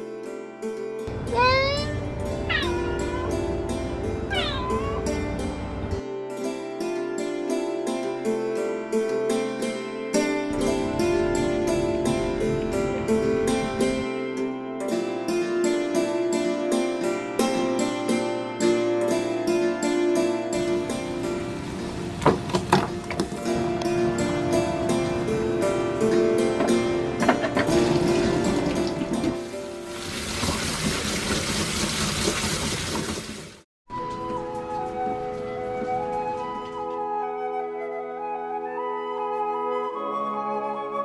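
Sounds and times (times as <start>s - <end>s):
background music: 0.0s - 30.1s, 33.9s - 41.0s
cats meowing: 1.3s - 3.6s, 4.3s - 5.3s
splashes into boiling water: 27.7s - 33.6s.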